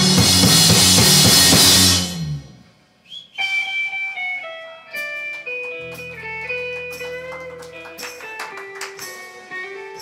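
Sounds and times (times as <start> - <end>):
rock band final hit: 0.0 - 2.6.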